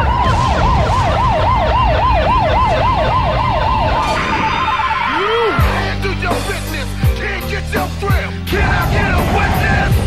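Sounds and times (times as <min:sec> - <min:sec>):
fast wailing siren: 0:00.0 - 0:05.6.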